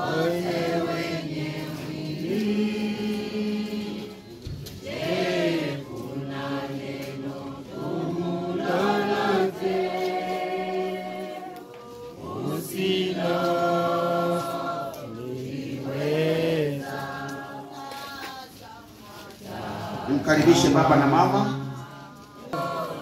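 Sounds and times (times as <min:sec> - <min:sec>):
group singing a hymn: 0:00.0 - 0:23.0.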